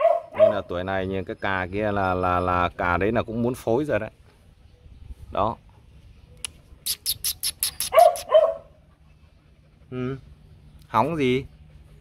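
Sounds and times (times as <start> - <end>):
dog barking: 0.0 - 0.7, 7.8 - 8.8
sharp clicks: 6.4 - 8.3.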